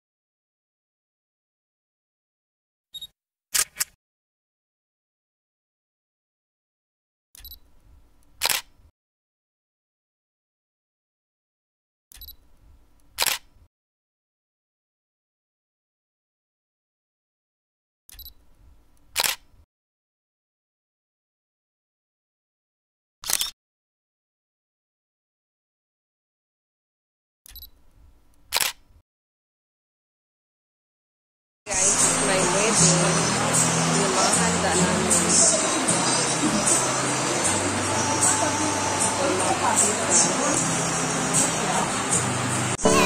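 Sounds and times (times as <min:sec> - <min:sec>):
camera shutter click: 0:03.6 - 0:04.0, 0:08.4 - 0:08.8, 0:13.2 - 0:13.6, 0:19.1 - 0:19.5, 0:23.2 - 0:23.6, 0:28.5 - 0:28.8
short high beep: 0:42.8 - 0:43.0.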